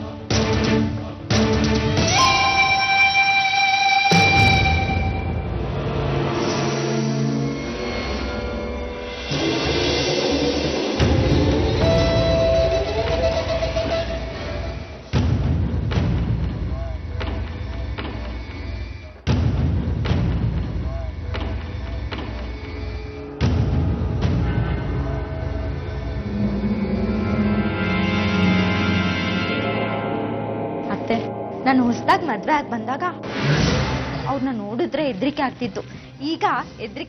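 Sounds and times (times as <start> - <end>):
dramatic score with rumbling swell: 22.6 - 36.2.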